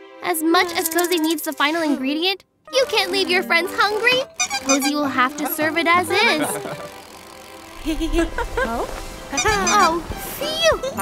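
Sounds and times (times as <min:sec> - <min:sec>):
cartoon character laughing: 0:04.4 - 0:06.9, 0:07.8 - 0:10.0
low rumble: 0:07.8 - 0:09.4.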